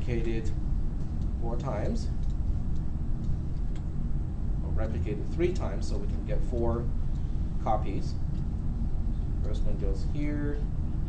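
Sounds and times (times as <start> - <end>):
low rumble of room noise: 0.0 - 11.0.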